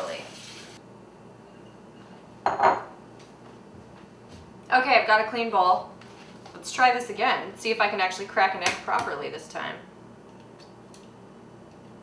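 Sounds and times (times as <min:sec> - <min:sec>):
glass bowl knocking on tile: 0:02.4 - 0:02.9.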